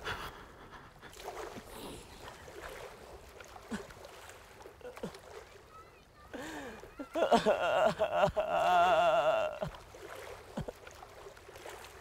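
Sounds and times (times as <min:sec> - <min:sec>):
small waves lapping against stone: 0:01.0 - 0:12.0.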